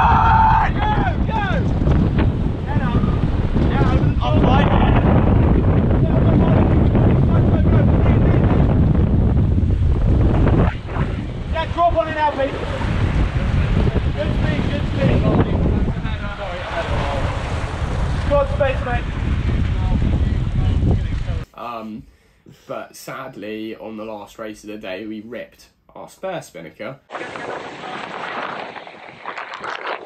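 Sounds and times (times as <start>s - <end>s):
water rushing past: 0.0s - 21.4s, 27.1s - 30.0s
wind buffeting microphone: 0.0s - 21.5s, 27.1s - 30.0s.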